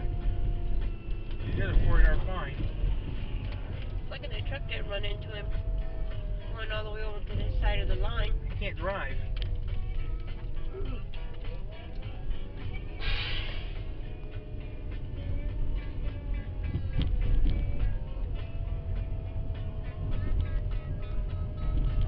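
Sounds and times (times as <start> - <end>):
music in car cabin: 0.0 - 22.0
road and engine rumble: 0.0 - 22.0
brief hiss: 13.0 - 13.8.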